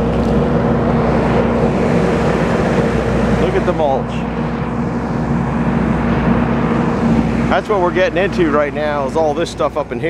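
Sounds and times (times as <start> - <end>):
diesel engine drone: 0.0 - 10.0.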